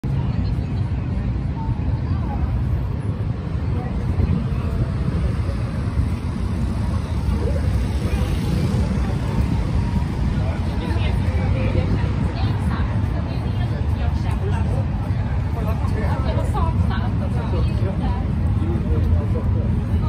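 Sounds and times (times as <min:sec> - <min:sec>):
low street rumble: 0:00.0 - 0:20.0
people talking: 0:00.0 - 0:20.0.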